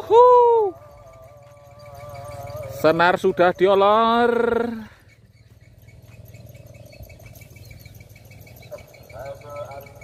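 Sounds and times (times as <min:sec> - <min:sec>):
distant voice calling out: 0:00.0 - 0:05.0, 0:08.7 - 0:10.0.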